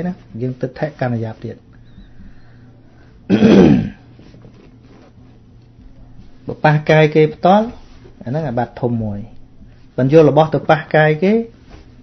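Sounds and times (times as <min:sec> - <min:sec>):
man clearing his throat: 0:03.3 - 0:04.1.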